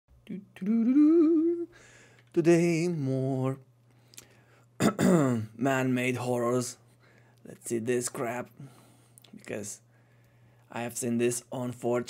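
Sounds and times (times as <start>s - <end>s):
person humming: 0.2s - 1.8s
short breath: 1.7s - 2.3s.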